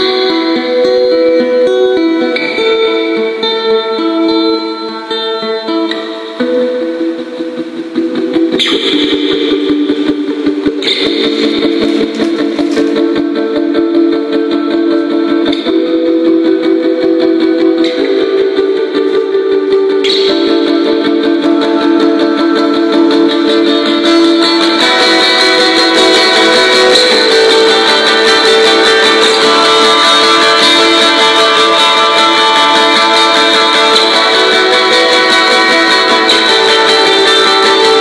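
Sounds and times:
solo guitar post-rock piece: 0.0s - 38.0s.

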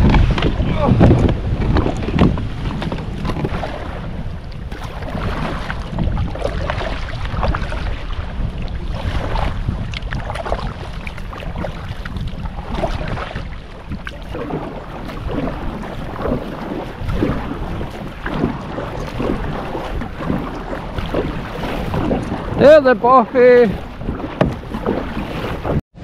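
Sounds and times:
water trickling off paddle: 0.0s - 25.8s
kayak paddle splashing water: 0.0s - 26.0s
wind rumble on microphone: 0.0s - 26.0s.

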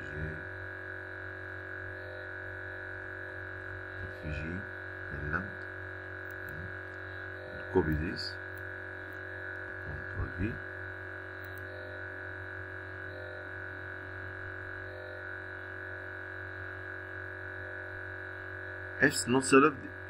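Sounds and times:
steady hum of held tones: 0.0s - 20.0s.

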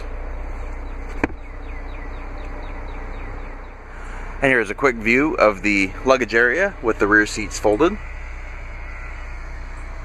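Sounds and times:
low outdoor hum: 0.0s - 10.0s.

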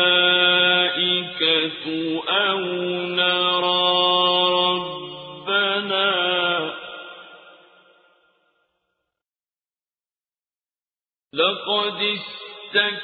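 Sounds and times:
solo chanted recitation: 0.0s - 6.9s.

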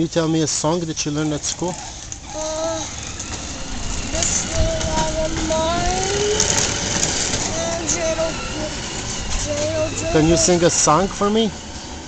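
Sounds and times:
background rumble and hiss: 0.0s - 12.0s
person making wordless sounds: 4.1s - 6.6s, 7.5s - 10.7s.

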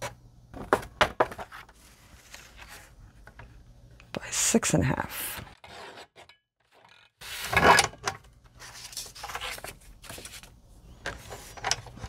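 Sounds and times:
paper sliding and handling: 1.5s - 3.0s, 8.6s - 11.6s.

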